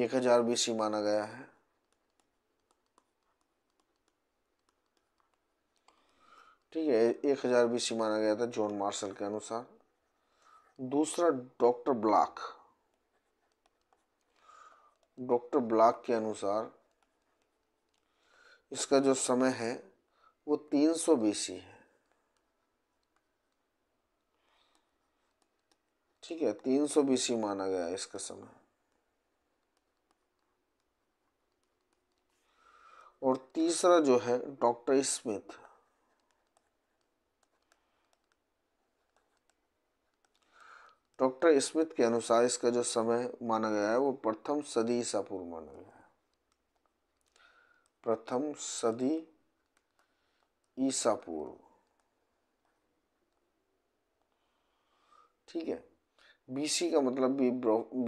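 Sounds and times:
stylus scratching on pen tablet: 0.1s - 19.8s, 33.3s - 47.2s.

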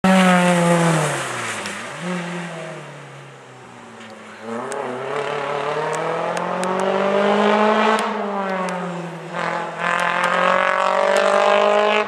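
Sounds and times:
rally car engine passing: 0.0s - 12.0s.

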